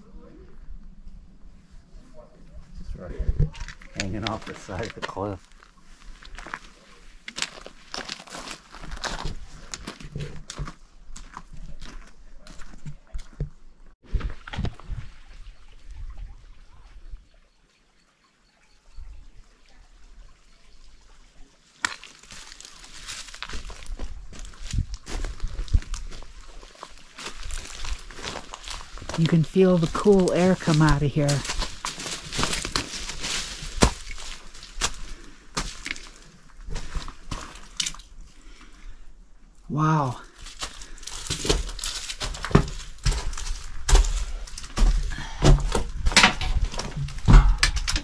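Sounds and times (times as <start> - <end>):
footsteps crunching on gravel: 4.2 - 13.5, 21.8 - 37.8, 40.2 - 45.3.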